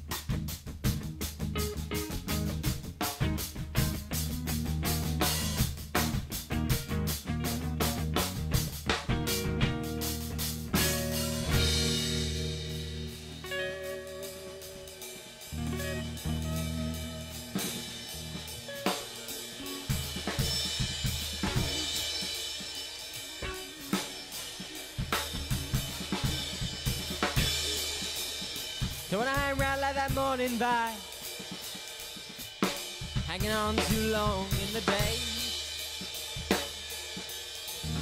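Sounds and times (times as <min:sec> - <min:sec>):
drum kit beat: 0:00.0 - 0:38.0
electric guitar chords: 0:00.8 - 0:31.6, 0:37.8 - 0:38.0.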